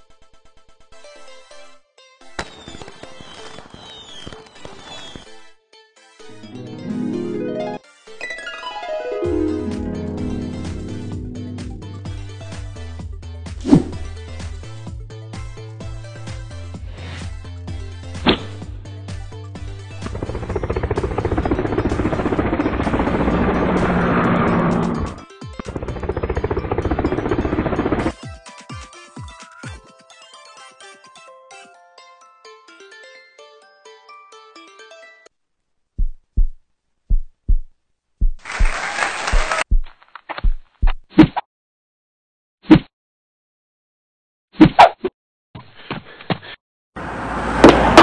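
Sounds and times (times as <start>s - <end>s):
falling whistles: 2.4s - 5.4s
fireworks crackling and popping: 2.4s - 5.4s, 38.4s - 39.7s
rapid pulsing rotor chop: 19.9s - 28.1s.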